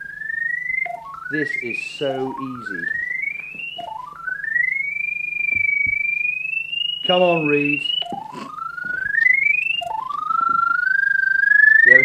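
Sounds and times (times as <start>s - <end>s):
electronic locator tone: 0.0s - 12.0s.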